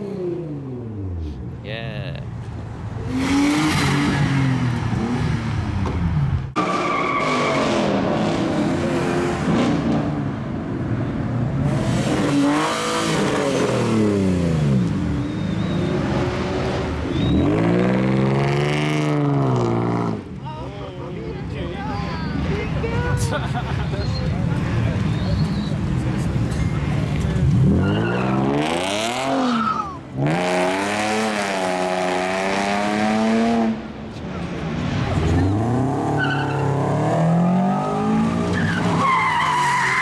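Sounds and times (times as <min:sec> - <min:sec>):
car engines revving hard: 0:03.0 - 0:20.4, 0:24.2 - 0:40.0.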